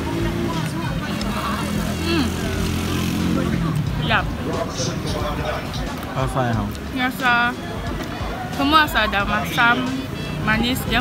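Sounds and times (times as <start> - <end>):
people talking: 0.0 - 7.6, 8.5 - 11.0.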